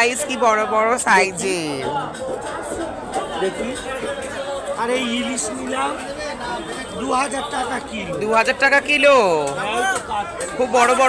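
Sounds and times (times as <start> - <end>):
market crowd chatter: 0.0 - 11.0
people talking: 0.0 - 11.0.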